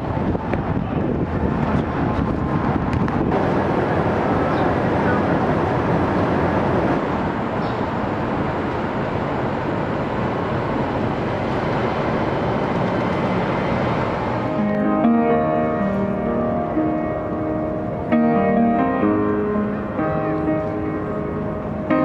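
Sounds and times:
city traffic noise: 0.0s - 22.0s.

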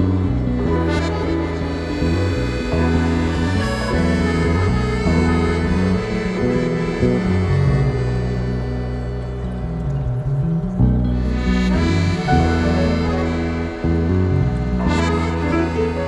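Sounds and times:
accordion chords: 0.0s - 16.0s
bass line: 0.0s - 16.0s.

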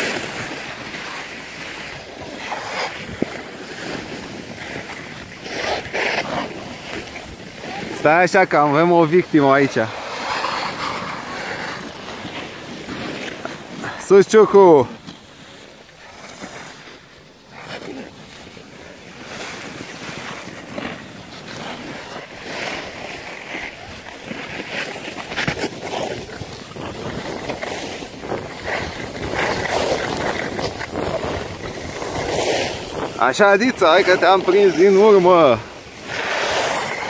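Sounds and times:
skis scraping over packed snow: 0.0s - 37.0s
wind on microphone: 25.3s - 37.0s.

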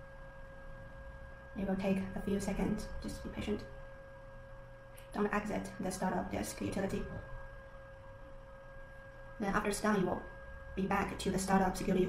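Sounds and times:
faint steady pitched tone: 0.0s - 12.0s
low background hum: 0.0s - 12.0s.

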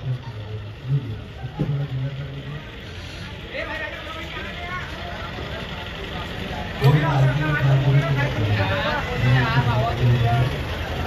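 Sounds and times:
people chattering in street: 0.0s - 11.0s.

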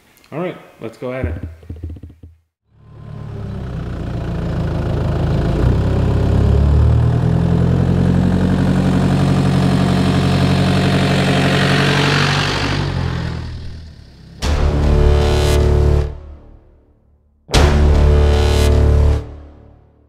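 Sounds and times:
vehicle engine passing: 2.7s - 16.1s.

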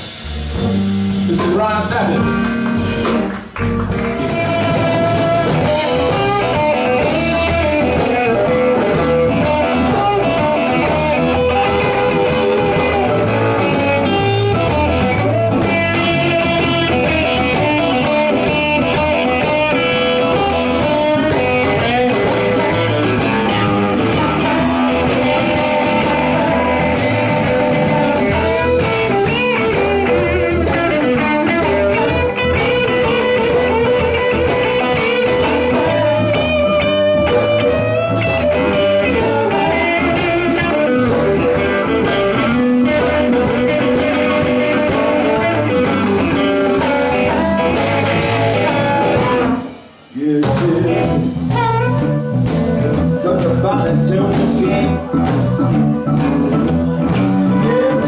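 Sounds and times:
blues band playing: 0.0s - 58.0s
electric guitar with vibrato: 0.0s - 58.0s
steady drum beat: 0.0s - 58.0s.

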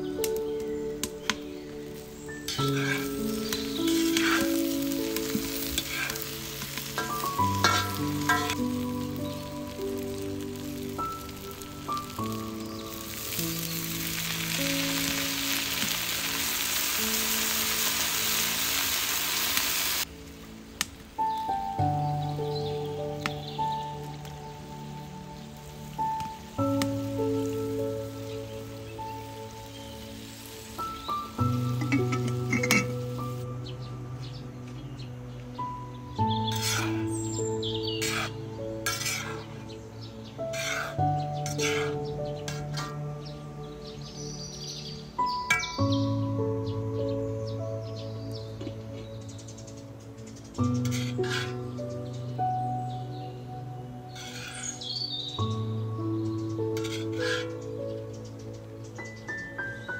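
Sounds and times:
calm background music: 0.0s - 59.9s
loud sizzle: 0.0s - 59.9s
vegetables sizzling in a wok: 1.0s - 33.8s, 35.8s - 43.4s, 49.2s - 59.5s
metal spoon scraping a wok: 2.5s - 3.1s, 3.9s - 4.5s, 5.2s - 8.6s, 36.5s - 37.0s, 38.0s - 39.5s, 40.5s - 43.0s, 50.8s - 51.6s, 54.2s - 54.8s, 56.7s - 57.5s.

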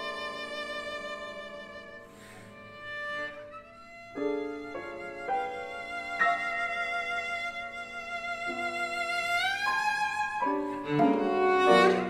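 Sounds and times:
cello and piano classical music: 0.0s - 12.0s.

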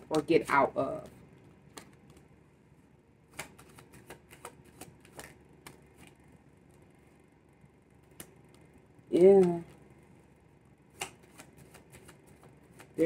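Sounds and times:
cards being shuffled: 0.1s - 2.3s, 3.3s - 6.9s, 10.9s - 13.0s.

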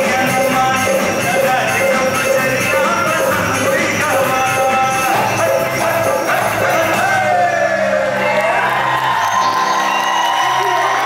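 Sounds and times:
live band playing a song: 0.0s - 7.9s.

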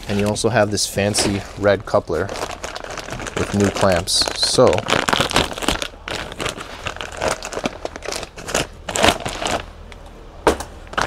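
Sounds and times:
plastic bag crinkling: 1.3s - 9.7s.

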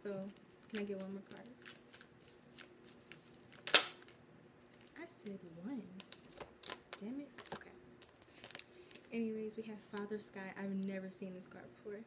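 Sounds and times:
cards snapping during shuffling: 0.6s - 4.2s.

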